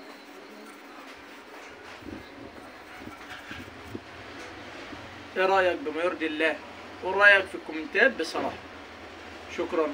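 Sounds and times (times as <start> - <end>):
steady background noise: 0.0 - 9.9.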